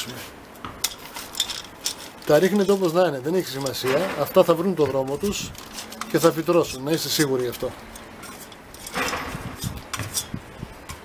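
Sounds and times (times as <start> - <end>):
fingers rustling seeds: 1.0 - 3.8, 4.4 - 8.9.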